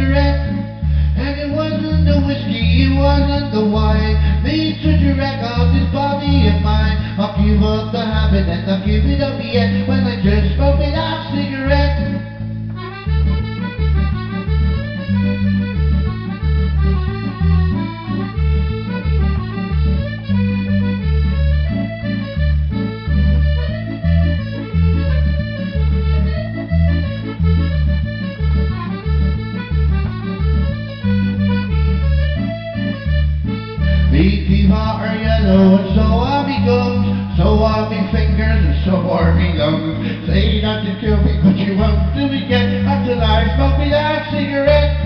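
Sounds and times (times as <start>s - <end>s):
piano accordion folk melody: 0.0s - 45.0s.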